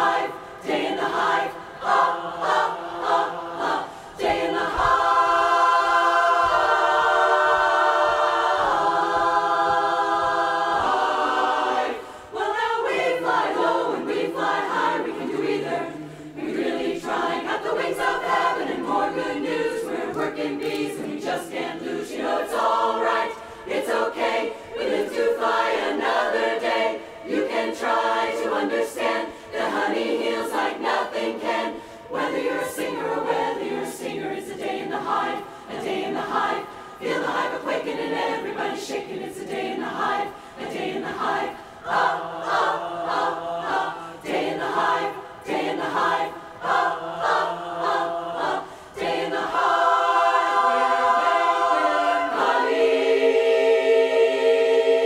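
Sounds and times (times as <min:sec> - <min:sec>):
women's chorus singing in harmony: 0:00.0 - 0:55.0.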